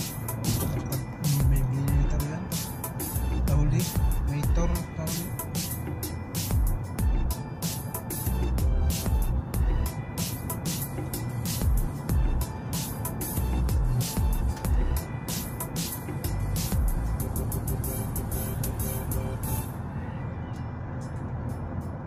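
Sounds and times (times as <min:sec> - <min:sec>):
music with steady beat: 0:00.0 - 0:19.8
car road rumble: 0:00.0 - 0:22.0.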